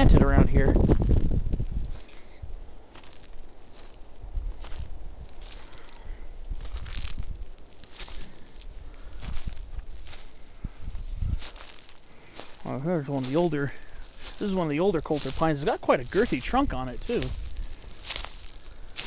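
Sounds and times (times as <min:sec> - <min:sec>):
dry vegetation rustling: 0:00.0 - 0:19.0
footsteps crunching dry leaves: 0:02.9 - 0:19.0.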